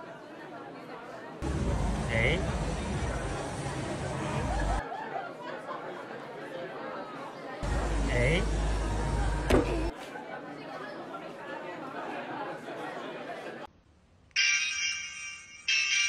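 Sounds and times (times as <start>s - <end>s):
people talking: 0.0s - 13.7s.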